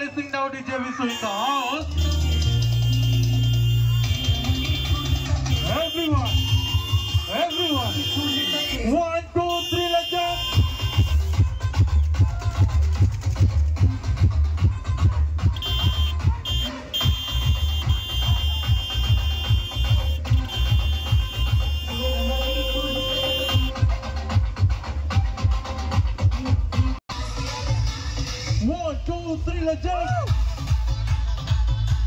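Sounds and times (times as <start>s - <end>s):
loud electronic dance music: 0.0s - 32.0s.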